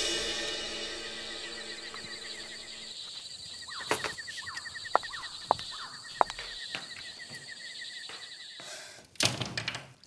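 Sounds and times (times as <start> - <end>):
crickets trilling: 0.2 - 9.0.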